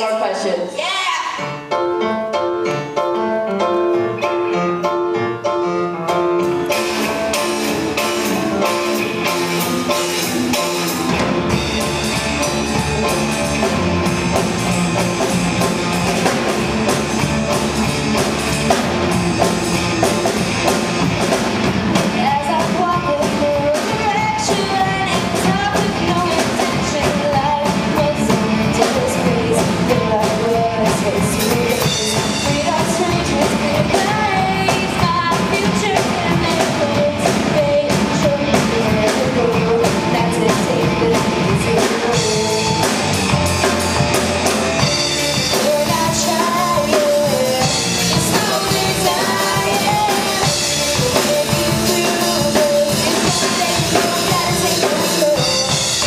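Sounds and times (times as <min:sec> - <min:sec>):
rock band playing live: 0:00.0 - 0:56.0
girl singing lead vocal: 0:22.0 - 0:43.0, 0:45.1 - 0:56.0.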